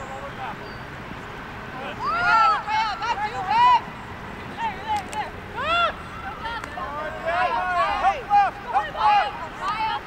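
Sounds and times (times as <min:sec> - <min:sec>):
outdoor background noise: 0:00.0 - 0:10.0
players yelling: 0:01.8 - 0:03.9, 0:04.6 - 0:10.0.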